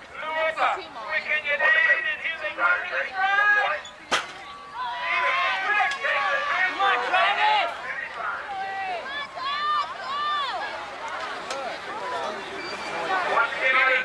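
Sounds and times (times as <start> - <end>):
spectators shouting: 0.1 - 14.0
starting gate clack: 4.1 - 4.5.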